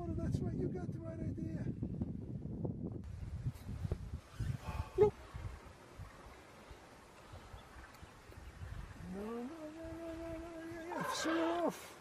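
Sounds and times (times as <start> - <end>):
young elephant bellowing: 9.0 - 12.0.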